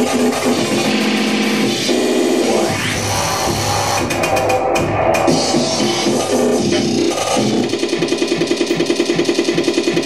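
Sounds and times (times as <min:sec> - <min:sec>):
loud noise music: 0:00.0 - 0:10.0.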